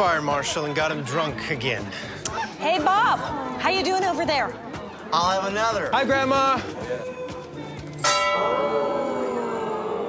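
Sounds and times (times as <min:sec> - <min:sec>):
brass bell ringing: 0:08.0 - 0:08.9.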